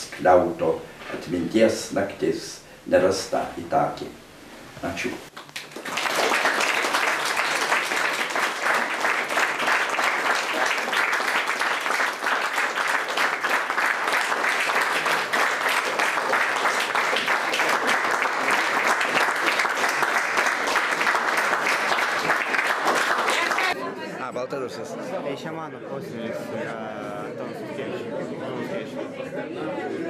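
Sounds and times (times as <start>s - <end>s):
audience applauding: 5.3s - 23.8s.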